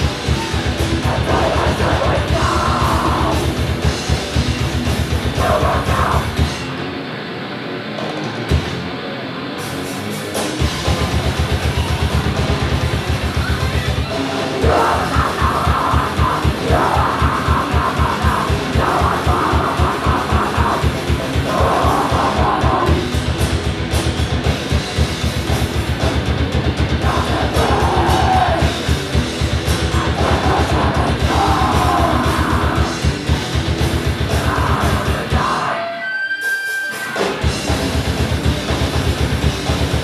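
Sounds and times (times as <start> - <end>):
person singing and shouting: 0.0 - 3.7, 5.3 - 6.6, 13.3 - 23.2, 26.9 - 29.0, 29.7 - 33.4, 34.2 - 36.0
heavy rock band playing: 0.0 - 40.0.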